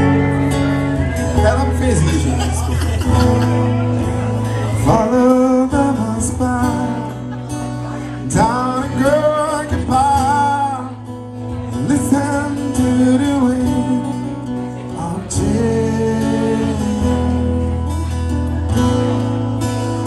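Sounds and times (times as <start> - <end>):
strummed acoustic guitar: 0.0 - 20.0
man singing: 4.0 - 17.8.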